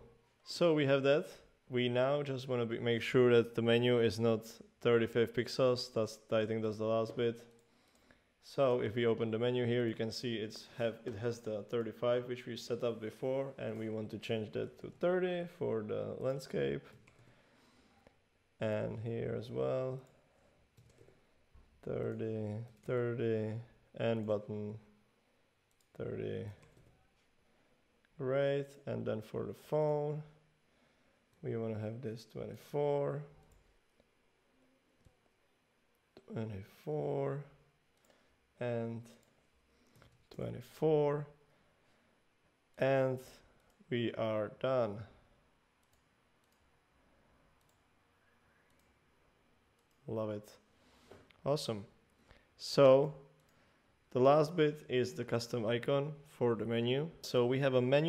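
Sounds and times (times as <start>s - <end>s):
computer mouse clicks: 20.0s - 21.2s, 45.8s - 46.7s, 47.6s - 47.9s, 48.6s - 49.0s, 49.8s - 50.1s.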